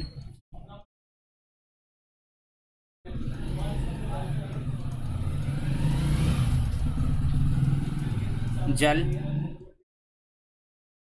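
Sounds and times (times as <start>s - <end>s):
vehicle engine running: 3.1s - 9.6s.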